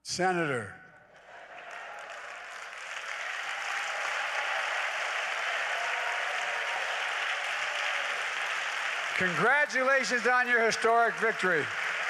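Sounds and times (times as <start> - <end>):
congregation applauding: 1.1 - 12.0.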